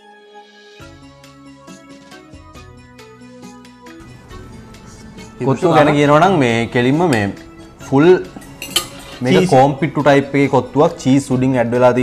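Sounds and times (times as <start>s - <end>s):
forks clinking on plates: 8.3s - 9.6s.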